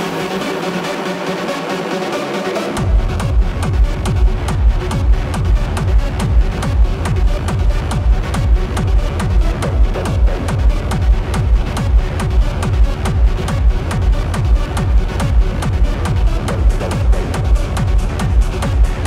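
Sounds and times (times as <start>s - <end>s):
techno kick drum beat: 0.0s - 19.0s.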